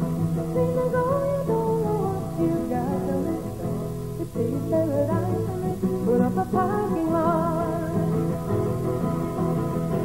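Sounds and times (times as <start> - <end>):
acoustic guitar: 0.0 - 10.0
woman singing slow song: 0.4 - 8.5.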